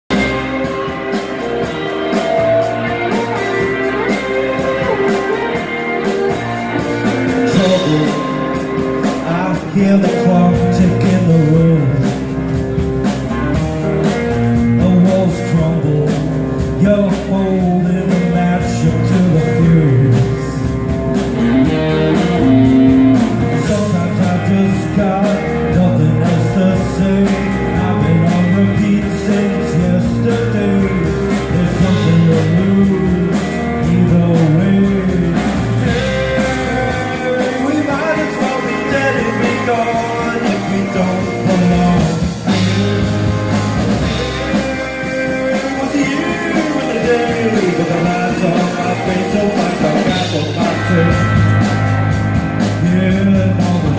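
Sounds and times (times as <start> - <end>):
drum kit: 0.0 - 53.9
person singing: 0.1 - 12.4, 14.3 - 53.9
electric guitars: 0.1 - 53.9.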